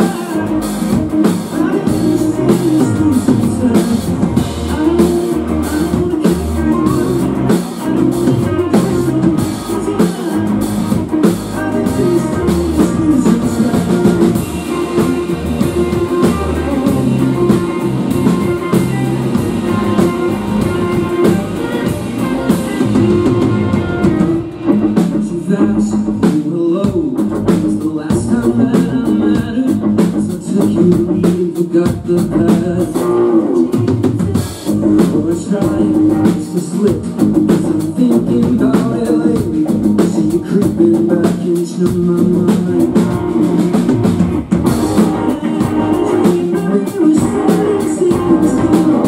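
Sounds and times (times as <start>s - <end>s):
bass guitar: 0.0s - 49.0s
drum kit: 0.0s - 49.0s
electric guitars: 0.0s - 49.0s.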